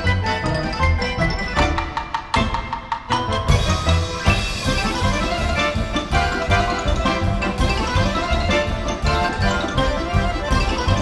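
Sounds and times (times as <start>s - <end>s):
lively folk dance music: 0.0s - 11.0s.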